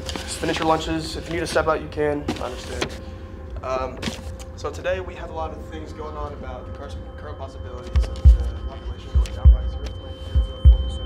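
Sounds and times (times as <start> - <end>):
steady hum: 0.0 - 11.0
high ringing tone: 4.6 - 11.0
heartbeat thumps: 7.8 - 11.0.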